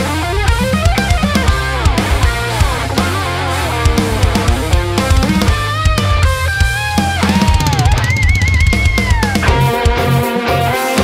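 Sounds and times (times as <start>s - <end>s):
electric guitar lead melody: 0.0s - 11.0s
heavy metal backing track: 0.0s - 11.0s.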